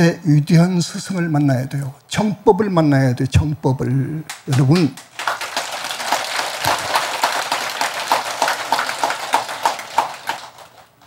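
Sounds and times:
audience applauding: 4.3 - 11.0.

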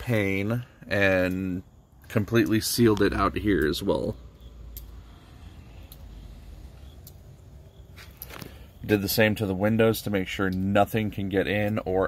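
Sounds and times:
steady low rumble: 0.0 - 12.0
faint clicks: 4.7 - 5.0, 5.8 - 8.6.

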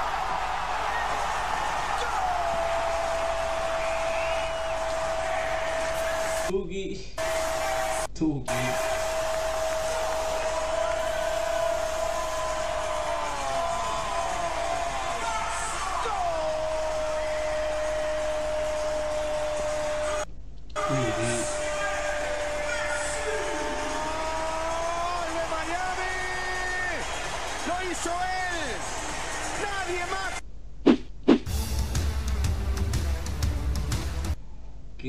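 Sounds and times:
stadium crowd roar: 0.0 - 6.5, 7.2 - 20.2, 20.8 - 30.4.

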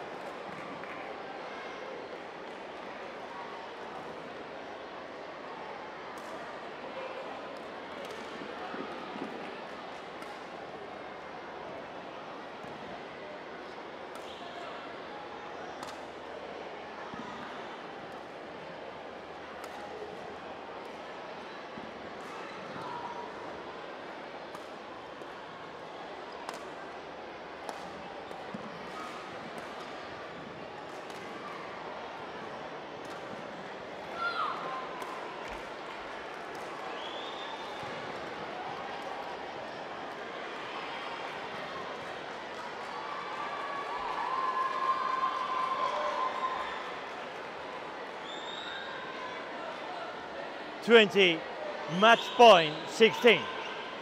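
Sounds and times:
murmur of hall crowd: 0.0 - 54.0.

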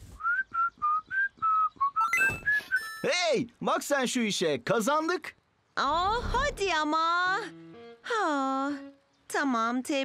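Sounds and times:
whistled tune: 0.2 - 3.1.

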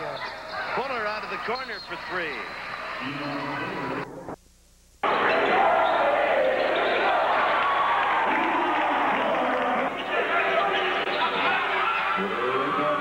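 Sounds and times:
crowd noise and voices: 0.0 - 4.4, 5.0 - 13.0.

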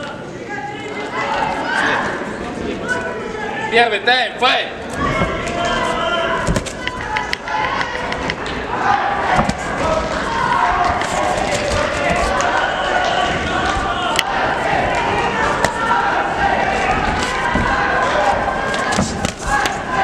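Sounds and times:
people shouting: 4.9 - 20.0.

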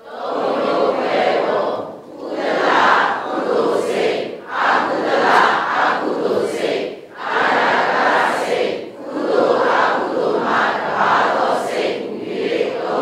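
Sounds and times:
voices reciting in unison: 0.0 - 13.0.

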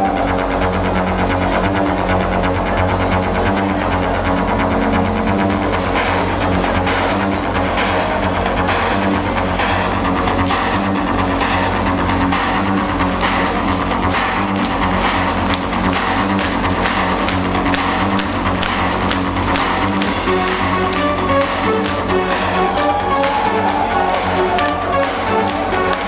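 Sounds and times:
live electronic darkwave music: 0.0 - 26.0
stepping synth melody: 13.6 - 26.0.

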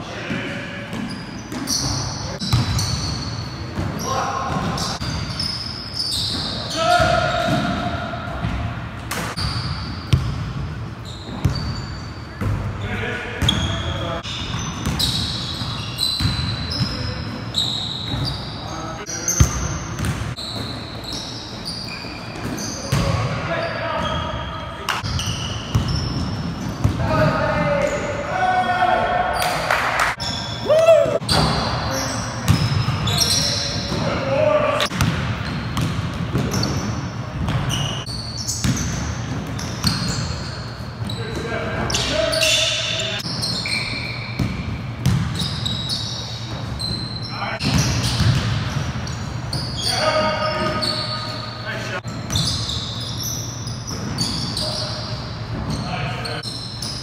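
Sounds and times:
sneakers squeaking: 0.0 - 57.0
basketball bouncing: 0.9 - 3.2, 9.2 - 10.8, 19.4 - 20.7, 25.0 - 27.0, 32.5 - 33.0, 34.9 - 37.8, 44.4 - 45.5, 47.6 - 49.0.

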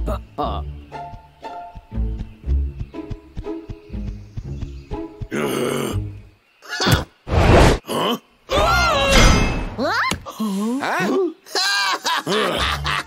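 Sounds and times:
cartoon grunts and groans: 7.8 - 9.2, 9.8 - 13.0.

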